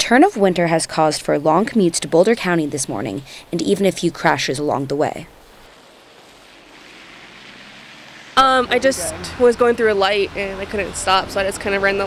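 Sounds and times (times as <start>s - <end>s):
tyres hissing on wet road: 2.3s - 12.0s.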